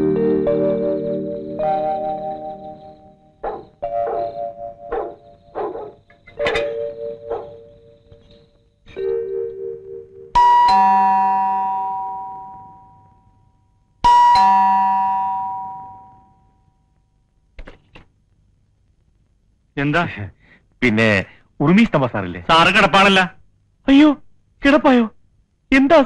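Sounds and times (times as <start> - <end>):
background film music: 0.0 - 11.4
ding-dong doorbell chime: 8.9 - 13.4, 14.0 - 16.7.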